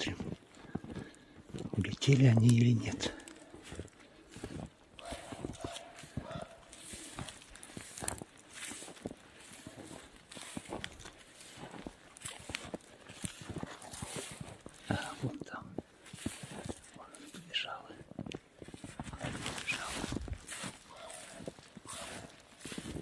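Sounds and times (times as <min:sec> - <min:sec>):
footsteps crunching through snow: 0:00.0 - 0:23.0.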